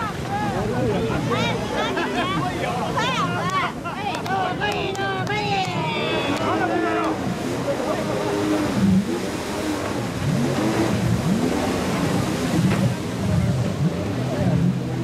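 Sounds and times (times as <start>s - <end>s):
jet ski engine revving: 0.0s - 3.8s, 4.5s - 15.0s
people's voices: 0.0s - 9.0s.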